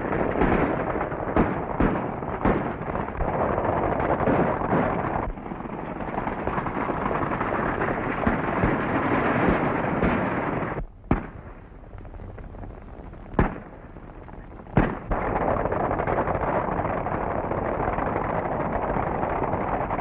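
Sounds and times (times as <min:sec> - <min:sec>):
gunshots: 0:00.0 - 0:11.6, 0:13.4 - 0:13.8, 0:14.7 - 0:17.2.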